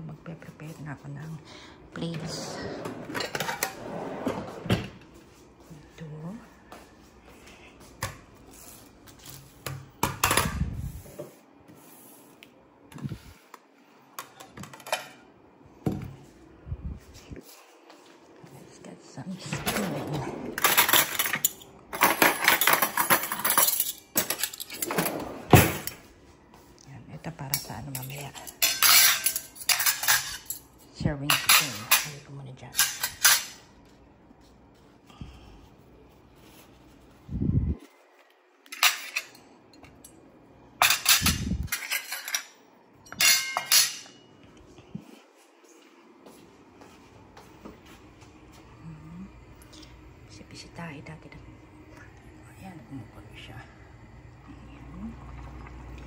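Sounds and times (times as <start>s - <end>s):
plates and cutlery clattering: 2.8s - 4.9s, 19.5s - 26.0s, 28.0s - 30.7s, 32.8s - 33.7s, 38.7s - 40.0s, 40.8s - 44.3s.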